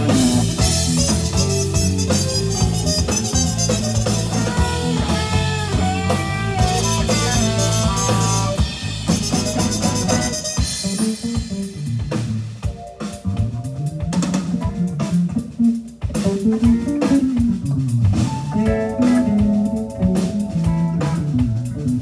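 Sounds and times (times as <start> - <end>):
drum kit with busy cymbals: 0.0 - 22.0
electric bass: 0.0 - 22.0
electric guitar: 0.0 - 22.0
trumpet melody: 0.3 - 11.2, 18.5 - 21.4.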